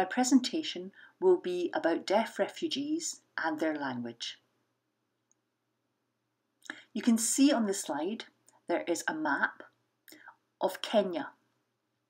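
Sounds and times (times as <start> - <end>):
woman speaking: 0.0 - 4.5, 6.8 - 9.8, 10.6 - 11.4.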